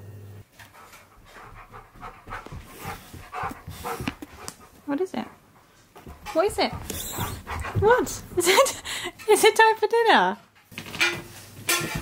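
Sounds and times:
dog panting: 0.6s - 9.2s.

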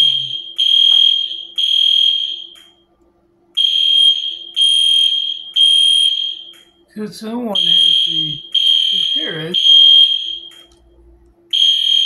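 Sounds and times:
electronic alarm beeping: 0.0s - 2.8s, 3.6s - 6.8s, 7.6s - 10.8s, 11.5s - 12.0s.

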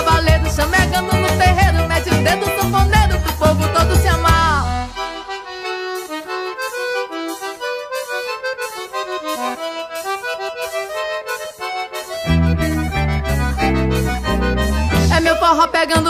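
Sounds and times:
accordion melody: 0.0s - 16.0s
band bass: 0.0s - 16.0s.

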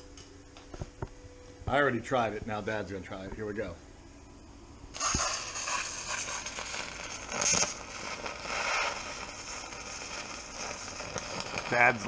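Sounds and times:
welding arc crackling hiss: 4.9s - 12.0s.

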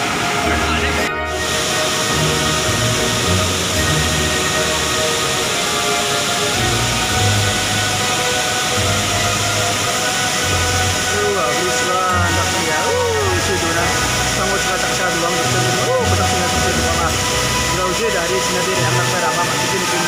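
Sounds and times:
loud rushing hiss: 0.0s - 20.0s.

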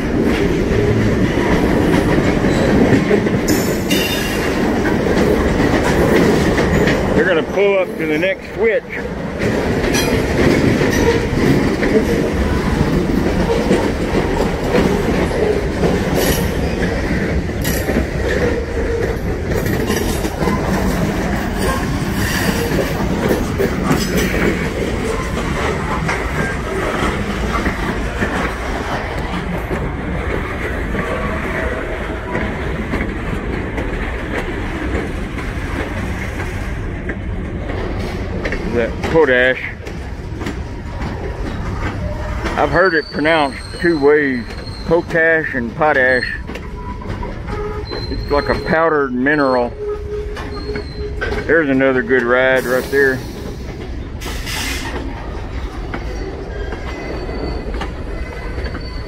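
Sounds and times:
freight train rumbling past: 0.0s - 59.0s
train wheels clicking on rails: 0.0s - 59.0s.

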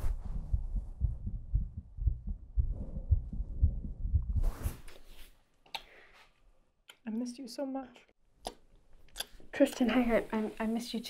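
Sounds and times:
clothing rubbing on microphone: 0.0s - 1.2s, 4.2s - 5.4s.

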